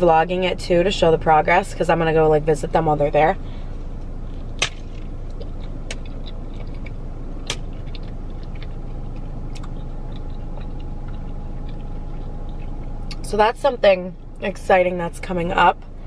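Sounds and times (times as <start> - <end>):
low hum: 0.0 - 16.0
person chewing food: 4.3 - 13.2
mouth clicks: 4.6 - 13.2.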